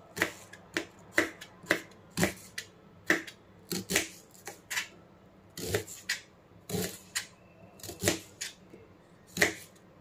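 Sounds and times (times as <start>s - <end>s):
knife chopping onion on board: 0.0s - 4.9s, 5.6s - 8.6s, 9.3s - 9.8s.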